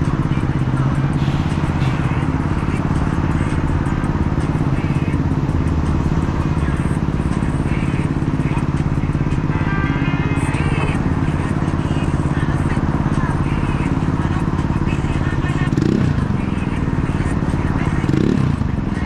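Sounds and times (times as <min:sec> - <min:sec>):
city street traffic: 0:00.0 - 0:19.0
vehicle engine idling: 0:00.0 - 0:19.0.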